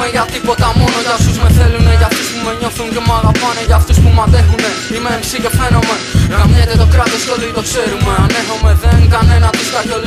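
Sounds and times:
man rapping over a beat: 0.0s - 10.0s
heavy repeating bass hits: 0.6s - 2.1s, 3.1s - 4.6s, 5.6s - 7.1s, 8.0s - 9.5s.

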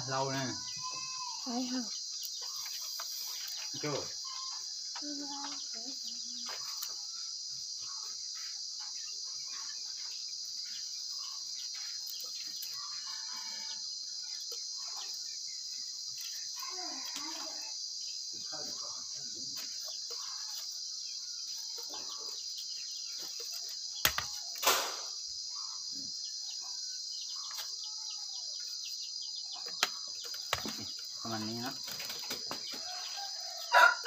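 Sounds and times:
insects chirring: 0.0s - 34.0s.

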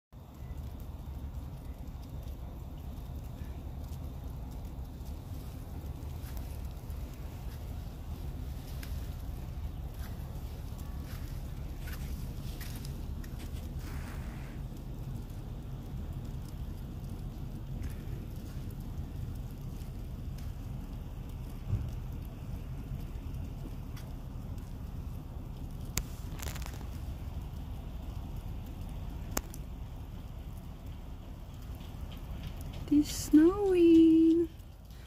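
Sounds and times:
low outdoor rumble: 0.1s - 35.0s
faint crackling: 0.2s - 35.0s.

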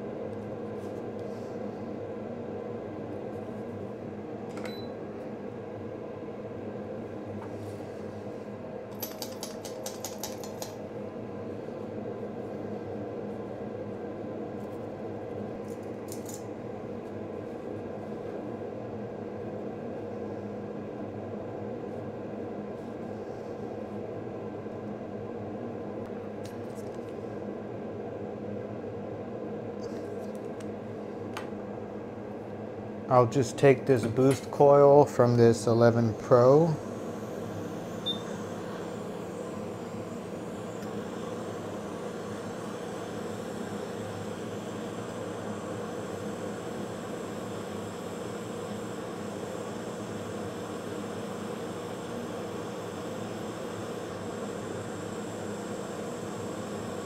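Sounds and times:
fan humming: 0.0s - 25.4s, 26.0s - 57.0s.

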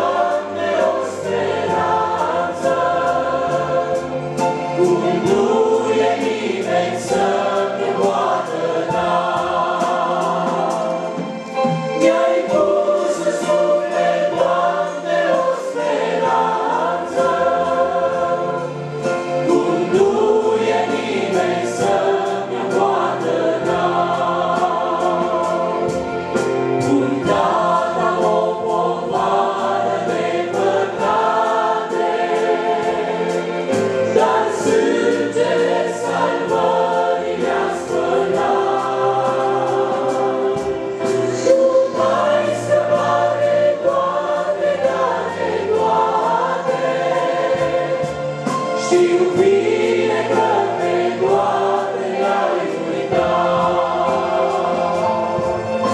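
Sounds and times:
congregation singing a hymn: 0.0s - 55.9s.

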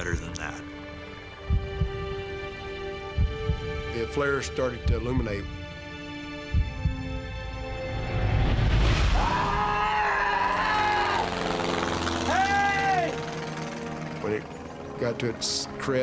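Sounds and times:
dramatic music score: 0.0s - 16.0s
rising whoosh: 7.6s - 12.6s
men shouting long calls: 9.2s - 11.4s, 12.2s - 13.2s.

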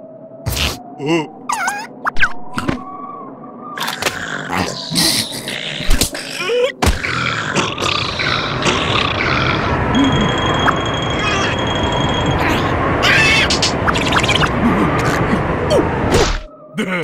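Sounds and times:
rushing blizzard wind: 7.4s - 16.5s.

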